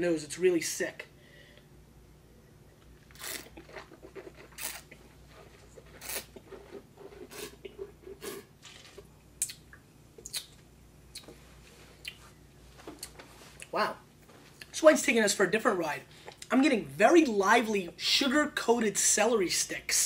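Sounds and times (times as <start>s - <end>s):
person slurping wine: 3.1s - 9.0s.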